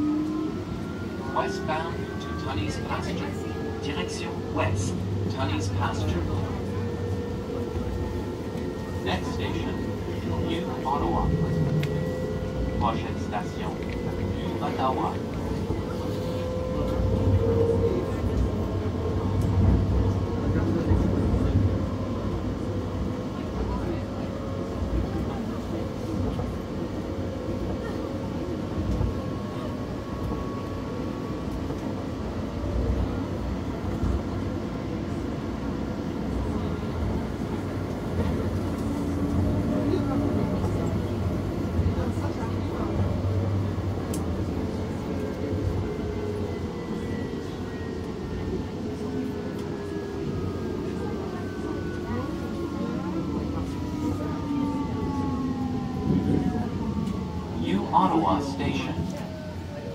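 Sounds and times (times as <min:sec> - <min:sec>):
train wheels rumbling on rail: 0:00.0 - 0:57.6.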